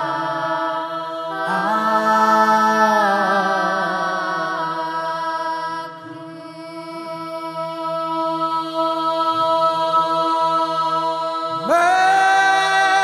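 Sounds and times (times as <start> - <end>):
choir singing a cappella: 0.0 - 13.0.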